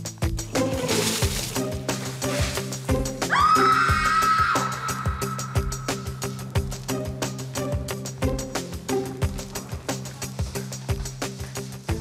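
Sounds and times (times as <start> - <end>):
background music with beat: 0.0 - 12.0
water splashing from bucket: 0.5 - 3.0.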